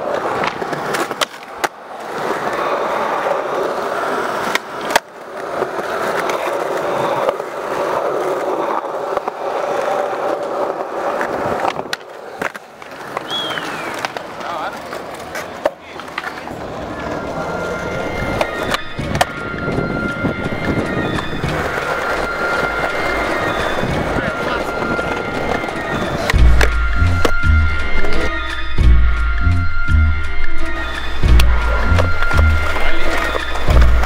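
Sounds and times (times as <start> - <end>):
skateboard clacking on ground: 0.0 - 28.4, 30.4 - 34.0
skateboard wheels rolling on concrete: 0.0 - 34.0.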